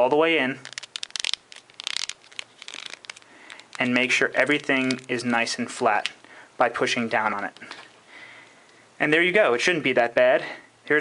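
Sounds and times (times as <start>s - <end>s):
paper crinkling and rustling: 0.6s - 6.2s.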